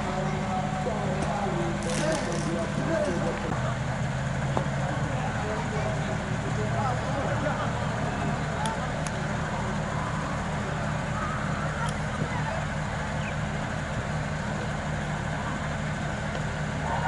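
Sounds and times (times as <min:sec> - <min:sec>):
distant players calling: 0:04.6 - 0:17.0.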